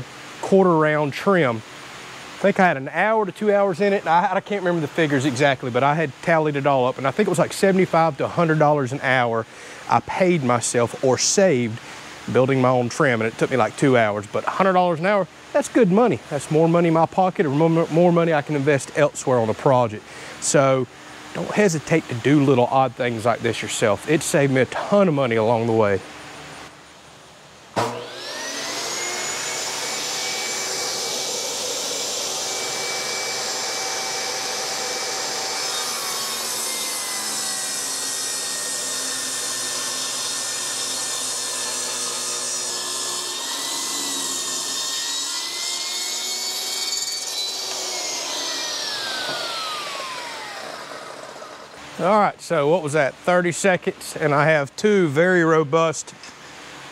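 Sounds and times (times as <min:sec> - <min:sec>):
table saw ripping wood: 0:27.8 - 0:52.1.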